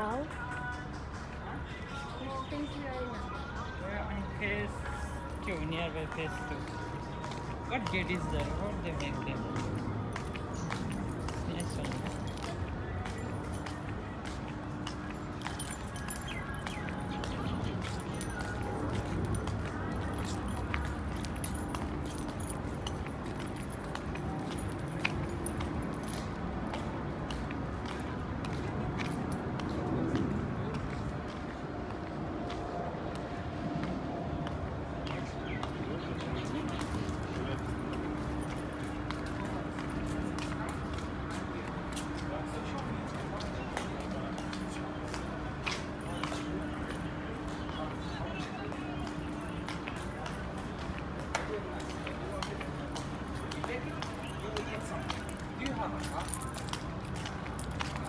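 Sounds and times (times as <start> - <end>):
indistinct talking: 0.0 - 58.0
footstep clicks: 4.9 - 58.0.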